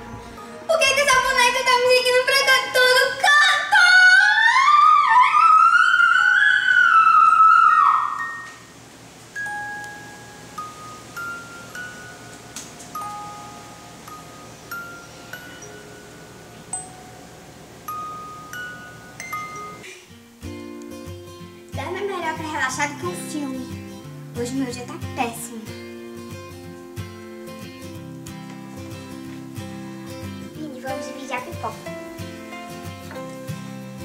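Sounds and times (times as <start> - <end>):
bell-like music box melody: 9.4 - 19.9.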